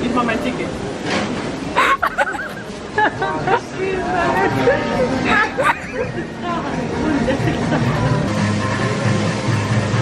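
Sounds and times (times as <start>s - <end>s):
crowd chatter: 0.0s - 10.0s
people talking: 2.1s - 8.1s
music playing: 4.4s - 10.0s.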